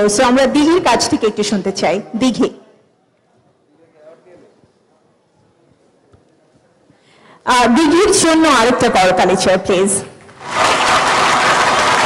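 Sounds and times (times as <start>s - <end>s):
audience applauding: 10.3s - 12.0s.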